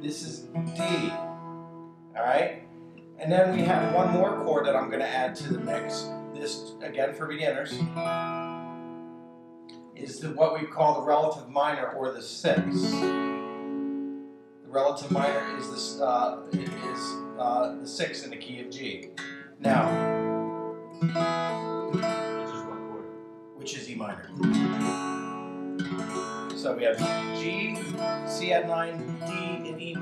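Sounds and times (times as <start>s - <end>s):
acoustic guitar chord ringing: 0.0s - 30.0s.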